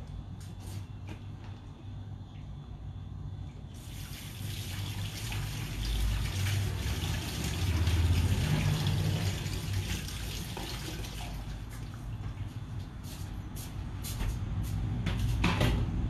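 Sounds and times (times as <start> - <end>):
tap water splashing into sink: 3.8 - 11.9.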